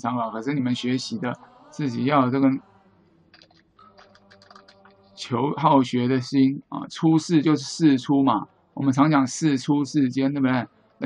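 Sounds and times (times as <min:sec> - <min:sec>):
computer keyboard typing: 0:03.4 - 0:04.9.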